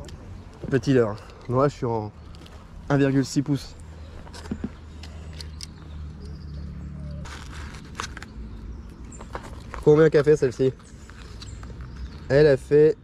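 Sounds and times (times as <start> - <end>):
light clicks and knocks of gear: 0.0 - 7.2, 7.9 - 12.6
rustle: 7.1 - 8.4.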